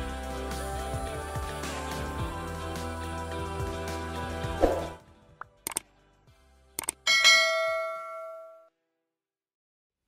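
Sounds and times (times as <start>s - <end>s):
bright bell ding: 7.1s - 8.7s.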